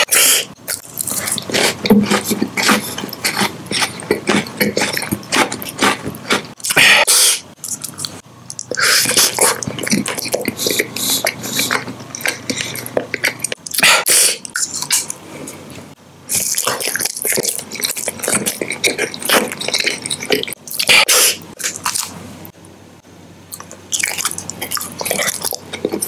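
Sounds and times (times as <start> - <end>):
chewing gum mouth sounds: 0.6 - 6.9, 7.6 - 22.2, 23.5 - 26.0.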